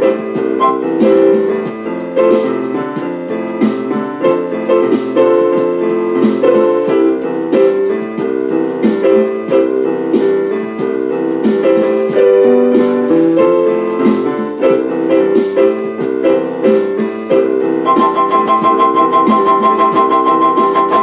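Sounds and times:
electronic keyboard piano chords: 0:00.0 - 0:21.0.

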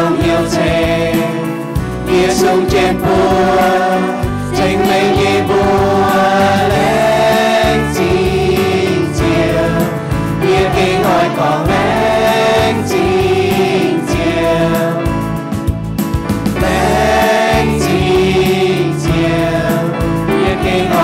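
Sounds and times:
group singing a hymn: 0:00.0 - 0:15.7, 0:16.5 - 0:21.0
electronic keyboard: 0:00.0 - 0:21.0.

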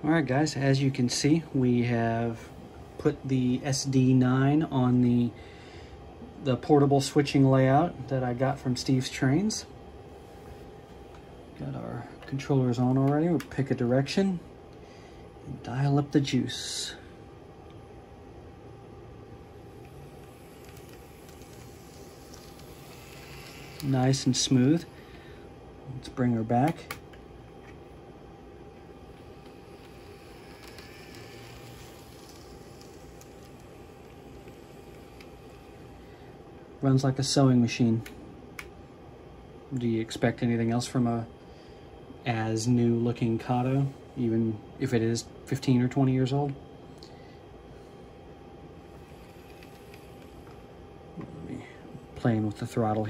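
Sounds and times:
steady background hum: 0:00.0 - 0:53.0
model locomotive motor whirring: 0:19.7 - 0:24.9, 0:29.1 - 0:35.8, 0:48.9 - 0:50.3.

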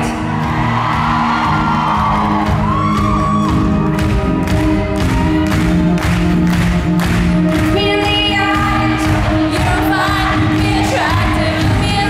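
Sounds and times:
acoustic and electric guitars playing: 0:00.0 - 0:12.0.

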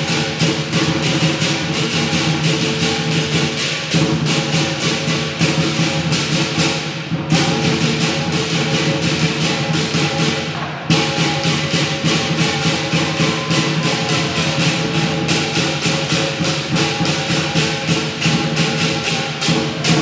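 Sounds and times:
big drum beating: 0:00.0 - 0:20.0
clashing cymbals: 0:00.0 - 0:20.0.

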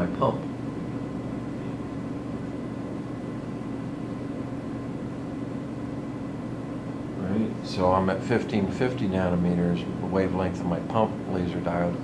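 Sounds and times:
ventilation fan humming: 0:00.0 - 0:12.0.

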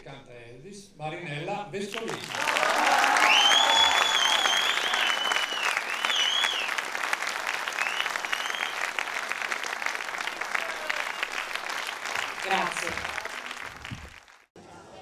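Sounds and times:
audience applauding: 0:01.9 - 0:14.5
whistling: 0:03.1 - 0:06.9, 0:07.6 - 0:09.1, 0:10.6 - 0:11.8.

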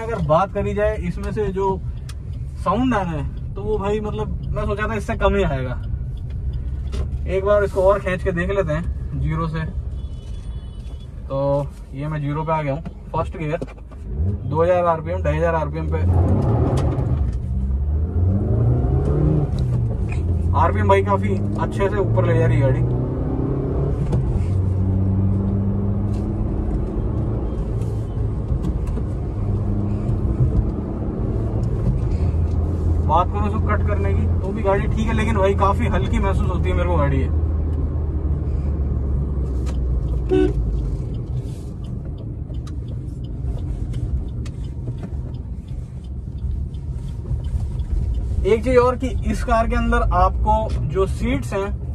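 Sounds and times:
car engine and road rumble: 0:00.0 - 0:51.9
car engine accelerating hard: 0:15.8 - 0:41.0
short toot tone: 0:40.3 - 0:40.6.

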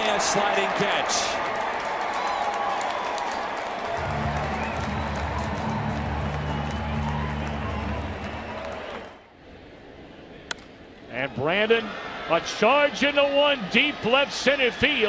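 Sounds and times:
crowd cheering and applauding: 0:00.0 - 0:09.2.

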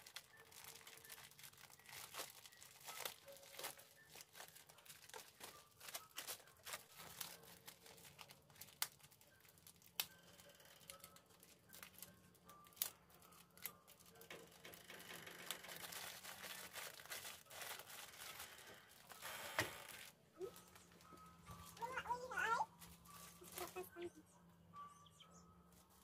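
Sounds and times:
plastic bag crinkling: 0:00.0 - 0:24.1.

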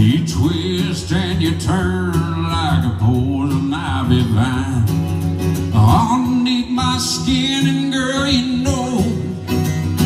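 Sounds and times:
man singing: 0:00.0 - 0:09.7
acoustic guitar playing: 0:00.0 - 0:10.0.

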